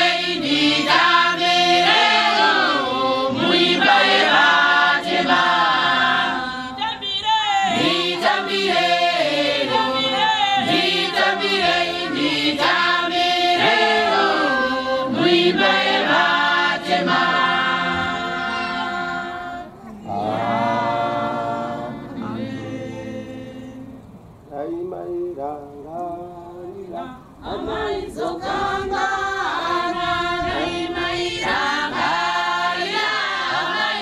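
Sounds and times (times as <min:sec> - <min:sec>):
congregation singing a hymn: 0:00.0 - 0:34.0.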